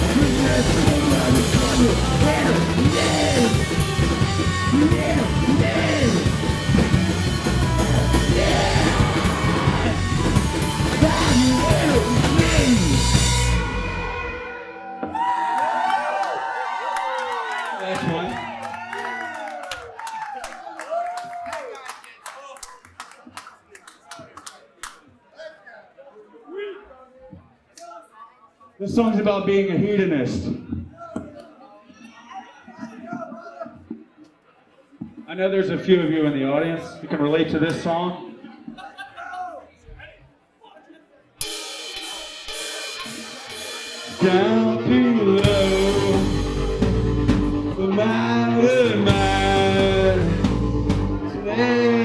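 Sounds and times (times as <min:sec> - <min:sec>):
scattered voices: 0:00.0 - 0:13.1
people whooping: 0:08.3 - 0:12.4, 0:14.8 - 0:22.6
audience clapping: 0:15.4 - 0:25.1
drum cymbals ringing: 0:41.4 - 0:44.7.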